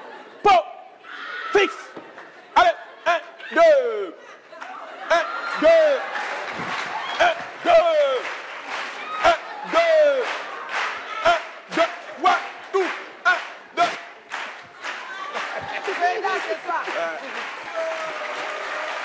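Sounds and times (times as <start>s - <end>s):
audience noise: 0.0s - 19.0s
man shouting a count: 0.4s - 2.0s, 2.6s - 4.2s, 5.0s - 6.2s, 7.1s - 8.3s, 9.1s - 10.4s, 11.1s - 14.2s
applause: 4.6s - 19.0s.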